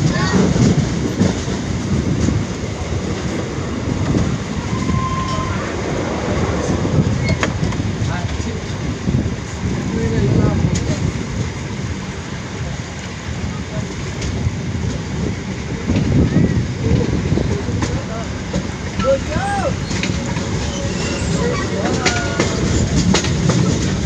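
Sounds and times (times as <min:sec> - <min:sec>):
train wheels rumbling on rails: 0:00.0 - 0:24.0
wind: 0:00.0 - 0:24.0.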